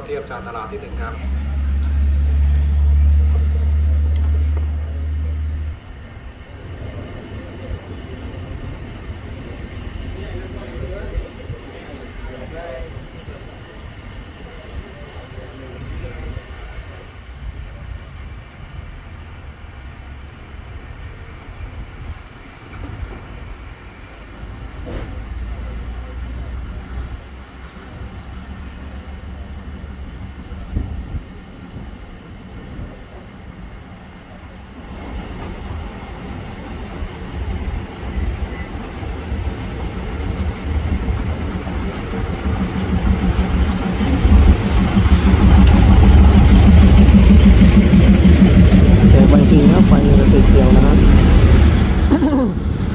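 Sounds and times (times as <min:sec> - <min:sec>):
diesel train engine: 0:00.0 - 0:52.9
train wheels rumbling: 0:00.0 - 0:52.9.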